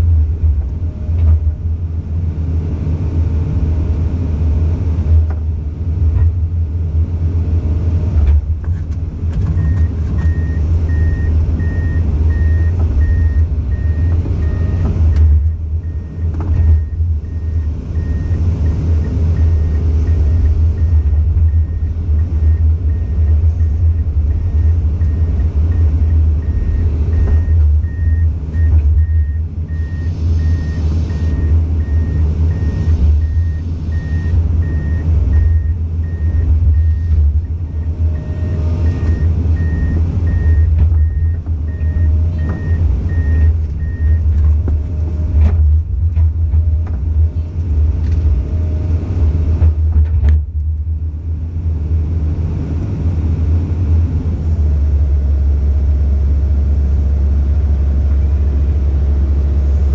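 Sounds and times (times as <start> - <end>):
excavator diesel engine rumbling: 0.0 - 59.9.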